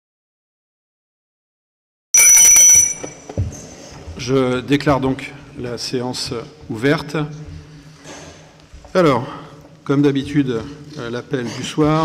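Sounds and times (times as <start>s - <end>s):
small hand bell ringing: 2.2s - 3.2s.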